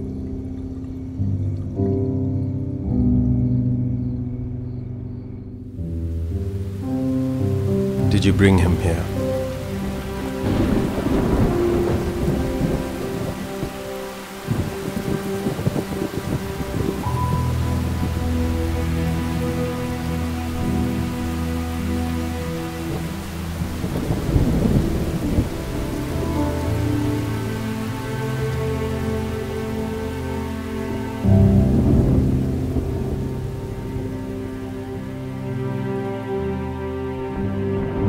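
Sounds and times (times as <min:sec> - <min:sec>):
rain: 0:00.0 - 0:04.6, 0:05.5 - 0:38.0
thunder rumbling: 0:09.1 - 0:35.1.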